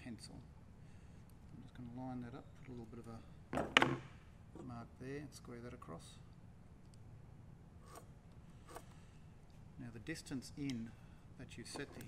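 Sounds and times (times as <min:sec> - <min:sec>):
pen scraping on timber: 0:07.8 - 0:08.9.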